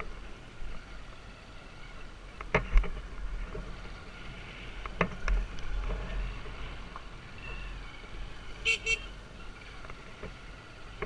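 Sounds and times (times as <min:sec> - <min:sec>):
horn toots: 0:08.6 - 0:09.1.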